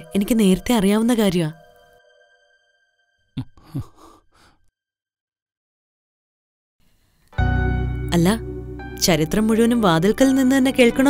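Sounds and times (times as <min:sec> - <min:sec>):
man's breathy exhale: 0:03.6 - 0:04.6.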